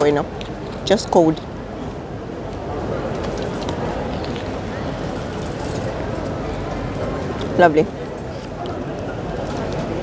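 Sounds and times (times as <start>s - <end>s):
indistinct voices of passers-by: 0.0s - 10.0s
street background noise: 0.0s - 10.0s.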